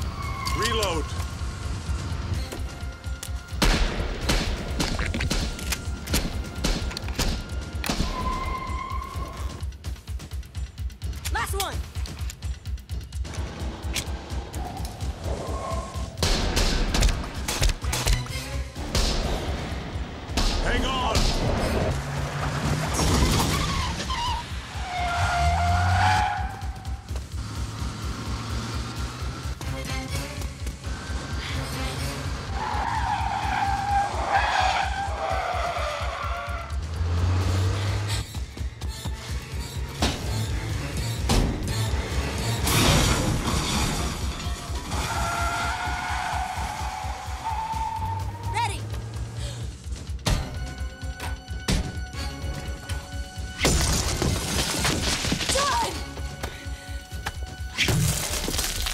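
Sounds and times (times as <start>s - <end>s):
tyres squealing: 0.0s - 1.4s, 23.1s - 27.0s, 32.5s - 36.7s
car engine running hard: 24.4s - 34.3s, 35.0s - 38.7s.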